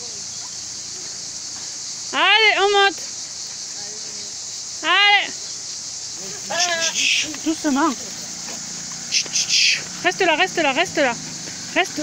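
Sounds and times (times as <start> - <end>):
steady high hiss: 0.0 - 12.0
man calling out: 6.2 - 7.4
goat bleating: 6.5 - 7.4.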